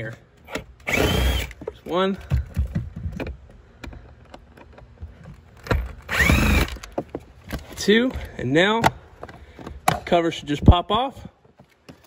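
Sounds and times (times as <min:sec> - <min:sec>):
impact driver motor whine: 0:00.8 - 0:01.6, 0:05.7 - 0:06.9.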